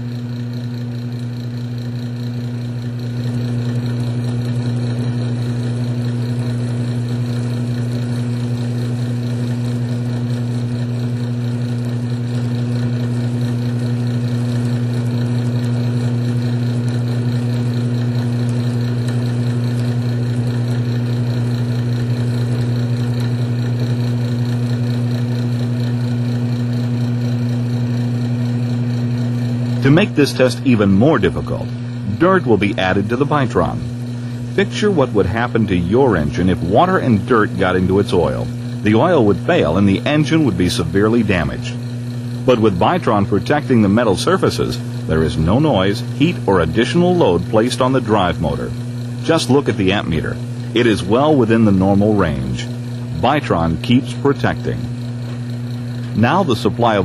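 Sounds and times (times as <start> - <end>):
electric motor humming: 0.0 - 57.0.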